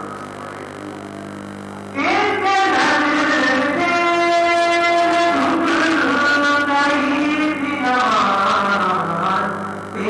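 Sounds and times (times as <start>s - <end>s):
low steady hum: 0.0s - 10.0s
man chanting over loudspeakers: 2.0s - 10.0s.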